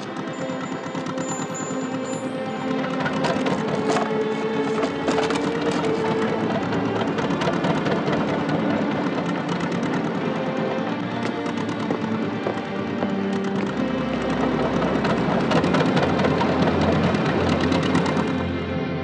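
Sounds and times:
sharp clicks: 0.0 - 18.5
film score music: 0.0 - 19.0.

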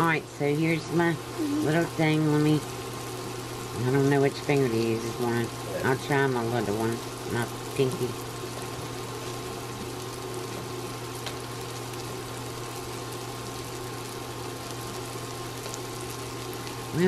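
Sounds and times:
constant low hum: 0.0 - 17.0
sausages sizzling in a pan: 0.0 - 17.0.

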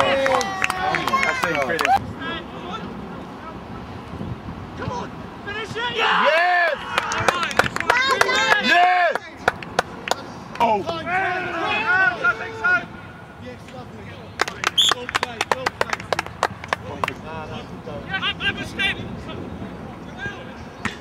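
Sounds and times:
players shouting and cheering: 0.0 - 3.0, 4.8 - 16.2.

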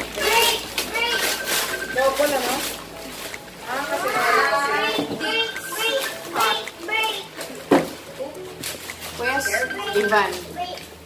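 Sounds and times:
wrapping paper rustling and tearing: 0.0 - 4.9, 5.8 - 11.0.

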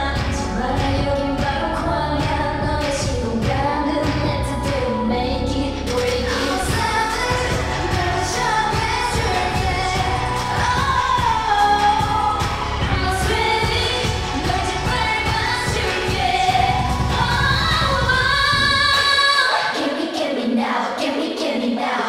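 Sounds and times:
dance-pop song with pounding beat: 0.0 - 22.0
women singing: 0.0 - 22.0.

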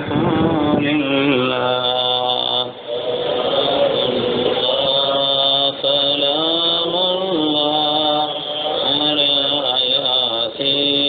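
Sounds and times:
person chanting unaccompanied: 0.0 - 11.0.

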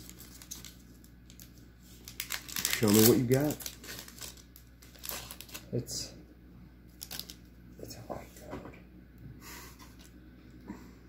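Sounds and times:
foil wrapper crinkling: 0.0 - 5.8, 6.9 - 7.5
low steady hum: 0.0 - 11.0.

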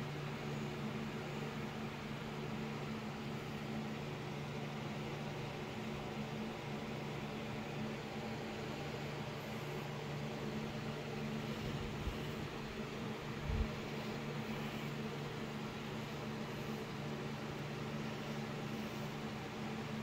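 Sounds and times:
low mechanical hum with hiss: 0.0 - 20.0.

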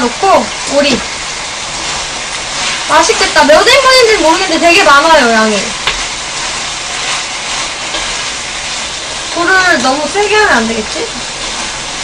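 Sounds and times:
meat sizzling in a frying pan: 0.0 - 12.0.

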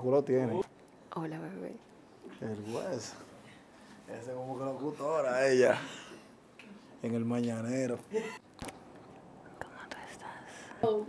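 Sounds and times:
faint whispering: 9.6 - 11.0.

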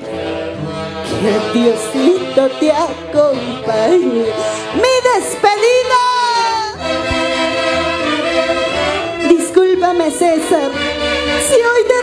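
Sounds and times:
saxophones playing sustained chords: 0.0 - 11.9.

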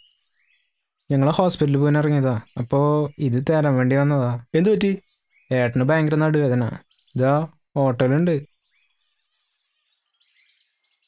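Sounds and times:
faint bird chirps: 0.0 - 11.0.

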